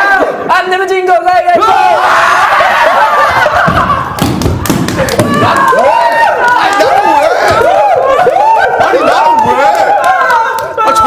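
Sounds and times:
young men shouting and screaming: 0.0 - 4.2, 4.9 - 11.0
heavy thumps of stamping on floor: 3.6 - 5.7.

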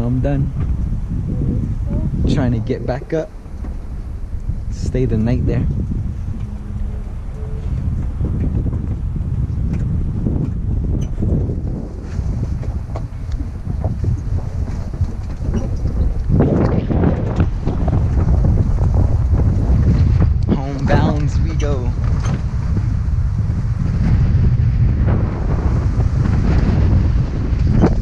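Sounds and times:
vehicle engine and tyres rumbling: 0.0 - 28.0
wind buffeting microphone: 0.0 - 28.0.

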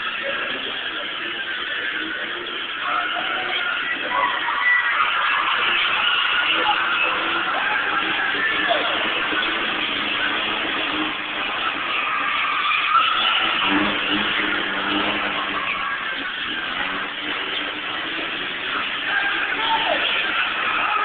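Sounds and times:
car engines revving: 0.0 - 21.0
crowd chatter: 0.0 - 21.0
tyre noise: 0.0 - 21.0.

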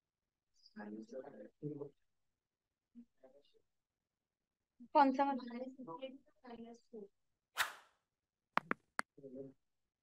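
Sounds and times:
mouse clicks: 8.6 - 9.0.

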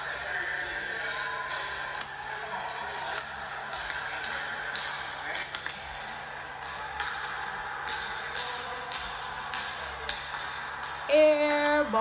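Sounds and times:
hollow gym room noise: 0.0 - 12.0.

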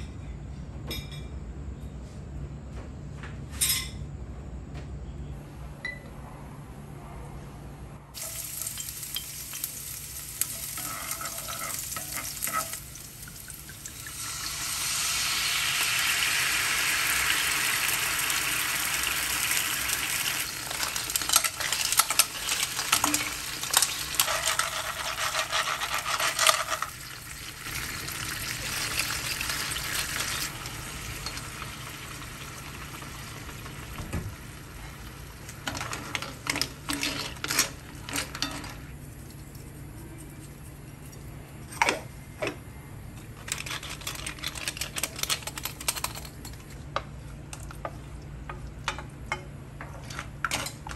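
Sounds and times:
oil sizzling in a frying pan: 8.2 - 35.6.

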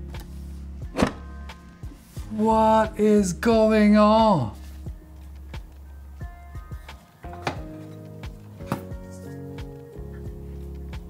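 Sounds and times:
low droning electronic music: 0.0 - 11.0.

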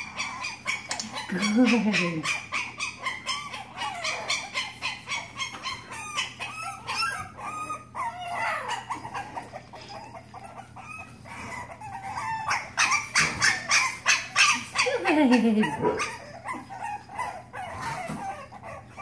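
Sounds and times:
puppy whining and squeaking: 0.0 - 19.0
puppy yipping: 0.0 - 19.0.

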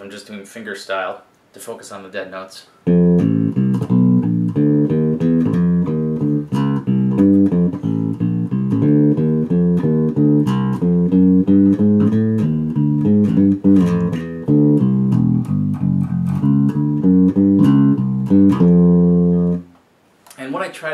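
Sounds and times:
electric bass walking line: 2.9 - 19.7.

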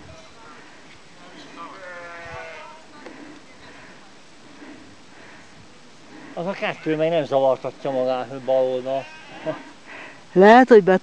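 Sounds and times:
sheep bleating: 1.6 - 2.8, 6.5 - 7.1, 8.0 - 9.8.

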